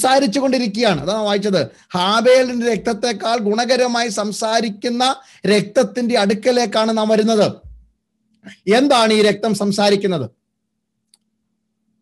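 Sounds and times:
man speaking: 0:00.0 - 0:07.8, 0:08.4 - 0:10.3.

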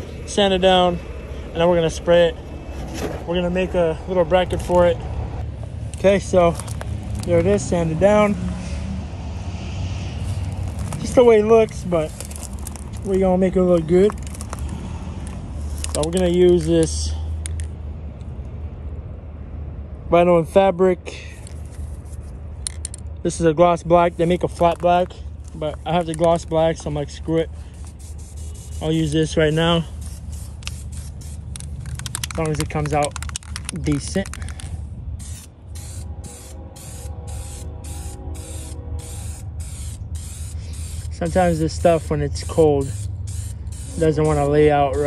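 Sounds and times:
spray paint can hissing: 0:10.0 - 0:13.2, 0:24.1 - 0:45.0.

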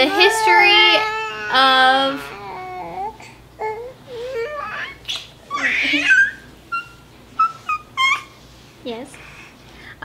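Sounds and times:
baby squealing: 0:04.2 - 0:08.4.

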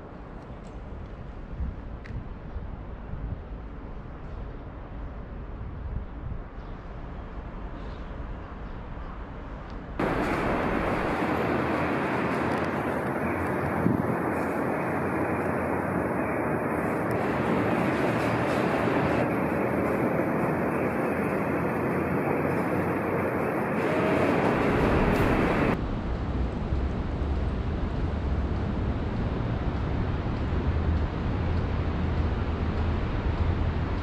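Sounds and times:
city street traffic roar: 0:00.0 - 0:34.0.

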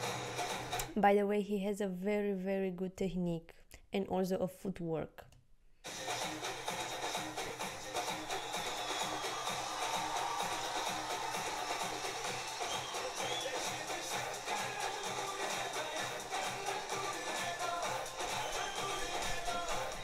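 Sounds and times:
upbeat dance song: 0:00.0 - 0:00.9, 0:05.9 - 0:20.0.

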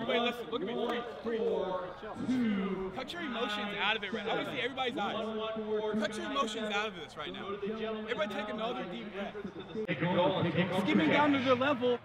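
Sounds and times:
man speaking clearly: 0:00.0 - 0:12.0
men talking indistinctly: 0:00.0 - 0:12.0.

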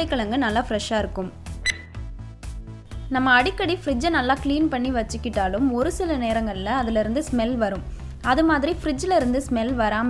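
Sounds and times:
woman speaking: 0:00.0 - 0:01.4, 0:03.1 - 0:10.0
background music: 0:00.0 - 0:10.0
bright ding: 0:01.6 - 0:01.9.

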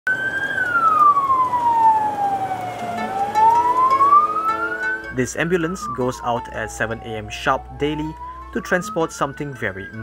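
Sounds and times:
ambulance siren wailing: 0:00.1 - 0:10.0.

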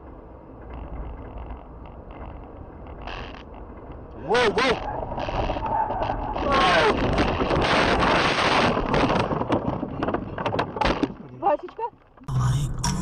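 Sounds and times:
sharp knocks and clicks: 0:08.7 - 0:12.2.

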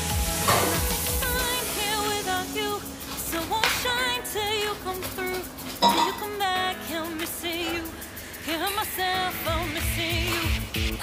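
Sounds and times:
sung melody: 0:00.0 - 0:08.0
background pop song: 0:00.0 - 0:11.0
steady sizzling hiss: 0:00.0 - 0:11.0.

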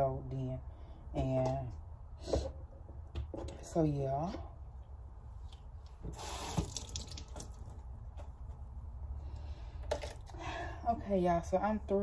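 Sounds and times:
tap water running into sink: 0:06.4 - 0:07.7.

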